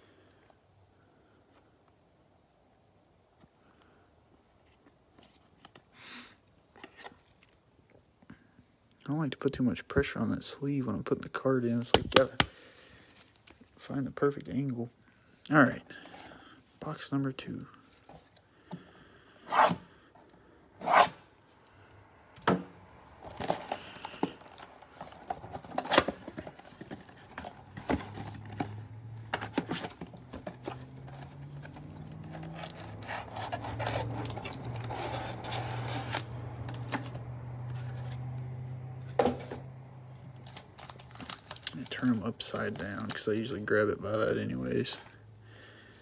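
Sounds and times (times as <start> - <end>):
crinkling and scraping: 4.4 - 5.9, 6.7 - 8.1, 11.8 - 14.0, 23.1 - 45.2.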